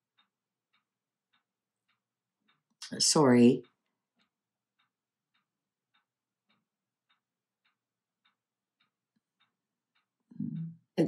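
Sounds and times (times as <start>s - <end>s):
faint ticking: 0.0s - 11.0s.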